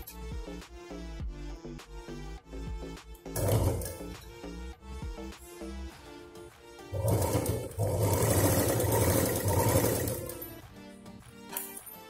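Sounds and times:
sewing machine stitching: 0:03.4 - 0:04.2, 0:06.9 - 0:10.6.

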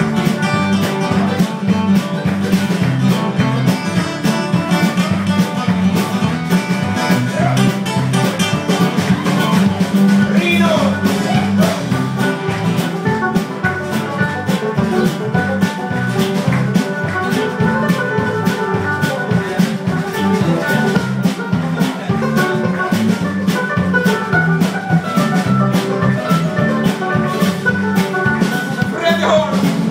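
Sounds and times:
drum kit beat: 0:00.0 - 0:29.9
live band instrumental: 0:00.0 - 0:29.9.

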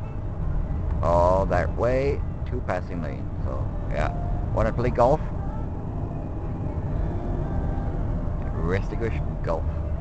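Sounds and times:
car engine rumble from cabin: 0:00.0 - 0:10.0.

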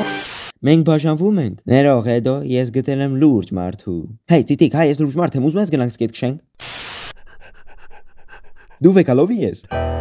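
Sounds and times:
cartoon dog panting: 0:07.1 - 0:09.4.

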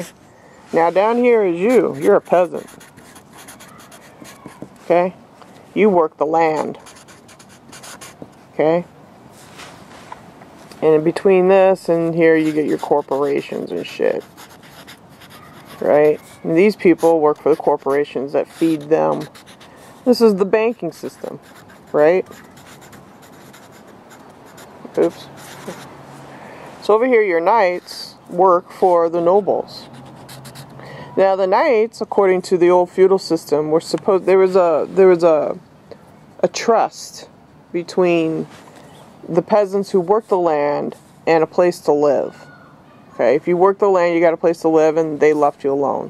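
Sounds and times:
marker scratching on paper: 0:00.8 - 0:04.8, 0:06.5 - 0:08.3, 0:11.9 - 0:25.9, 0:29.8 - 0:30.7.

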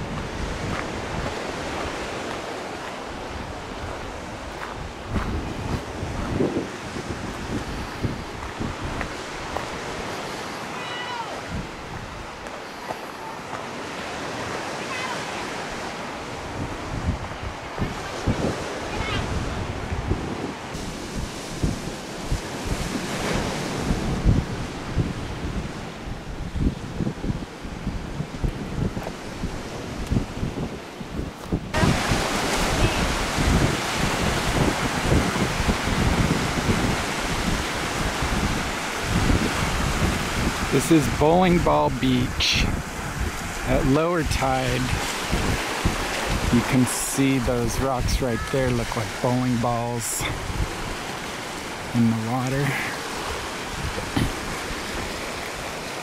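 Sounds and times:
surf washing onto beach: 0:00.0 - 0:56.0
wind gusting on microphone: 0:00.0 - 0:56.0.

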